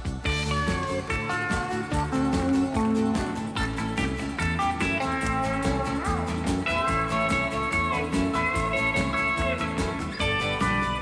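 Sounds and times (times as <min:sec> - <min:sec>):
country band playing: 0:00.0 - 0:11.0
sliding pedal steel guitar: 0:00.0 - 0:11.0.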